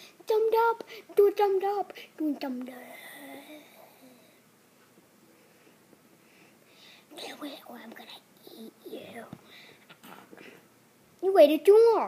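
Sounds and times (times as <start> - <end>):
boy whispering and murmuring: 2.5 - 4.4, 7.1 - 9.4.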